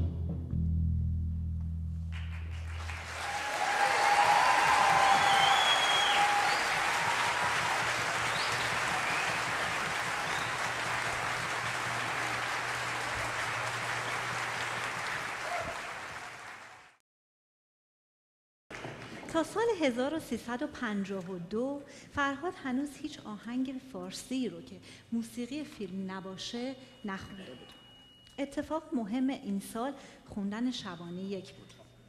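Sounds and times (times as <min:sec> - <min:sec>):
audience applauding: 0:02.2 - 0:17.0
cheers and whistles: 0:02.8 - 0:16.9.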